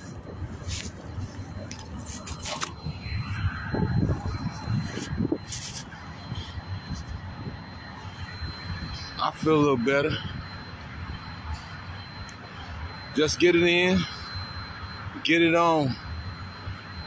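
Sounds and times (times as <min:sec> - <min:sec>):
wind rumble on microphone: 0:00.0 - 0:11.4.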